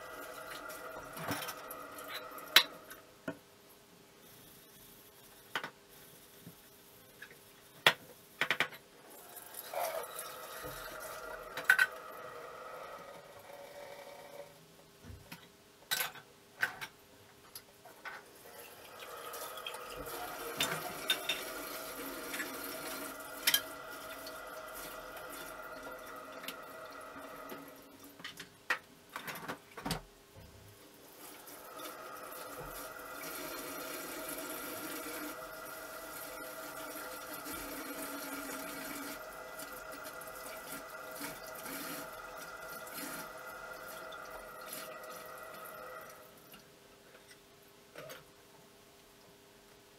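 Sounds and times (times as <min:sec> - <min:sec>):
kitchen tap running into sink: 0:00.0 - 0:03.0, 0:09.1 - 0:13.4, 0:18.4 - 0:28.2, 0:31.2 - 0:46.4.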